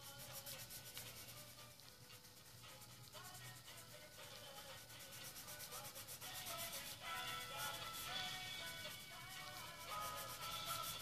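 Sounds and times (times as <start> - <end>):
blending stump rubbing paper: 0.0 - 11.0.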